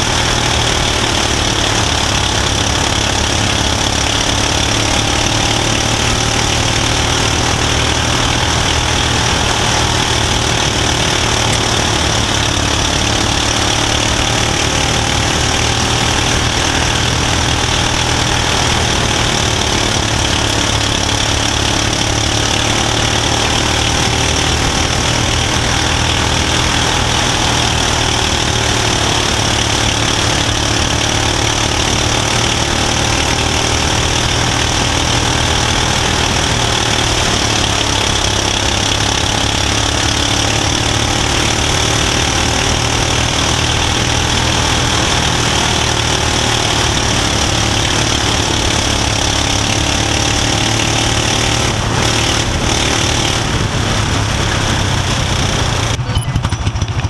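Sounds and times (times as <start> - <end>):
race car engine running: 0.0 - 57.0.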